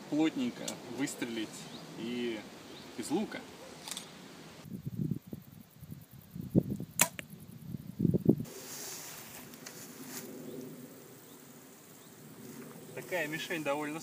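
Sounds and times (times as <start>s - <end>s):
bow release crack: 3.8s - 4.2s, 6.7s - 7.3s, 8.8s - 10.3s.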